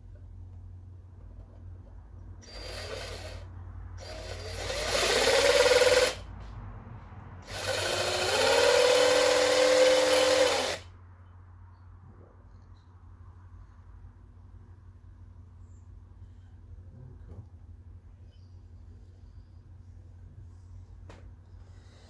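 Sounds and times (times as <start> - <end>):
drill cutting disc grinding plastic: 2.4 - 3.4, 7.5 - 10.8.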